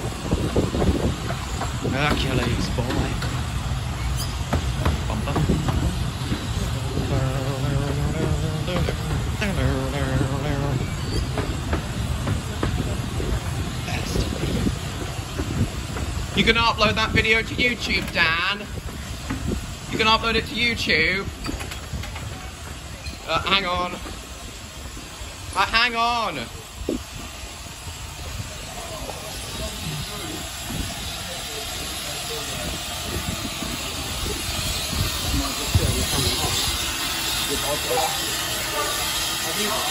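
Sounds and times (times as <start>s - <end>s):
railway coaches rumbling past: 0.0s - 39.9s
steam locomotive hissing: 0.0s - 39.9s
wheels clicking over rail joint: 21.3s - 23.3s.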